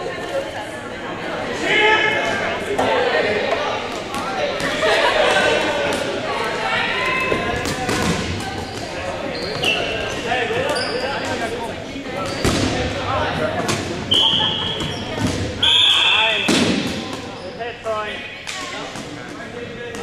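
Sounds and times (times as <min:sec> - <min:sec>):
high squeals: 0:14.1 - 0:16.5.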